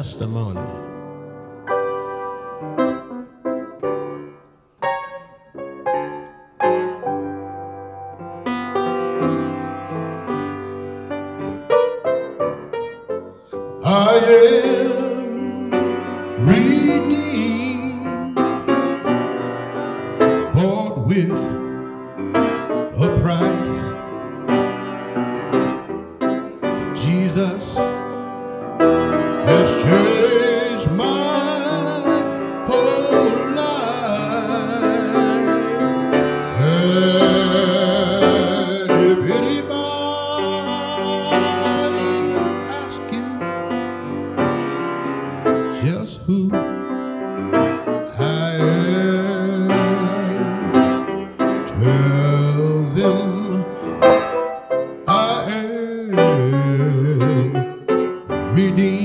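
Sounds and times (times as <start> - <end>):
keyboard accompaniment: 0.0 - 59.0
man singing gospel: 13.5 - 18.4, 20.4 - 21.8, 22.9 - 24.1, 26.8 - 28.2, 29.3 - 43.9, 45.7 - 46.9, 48.0 - 54.2, 55.0 - 59.0.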